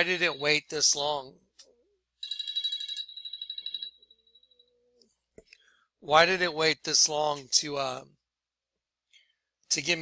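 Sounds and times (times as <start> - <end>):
faint lower tone: 4.0 - 5.2.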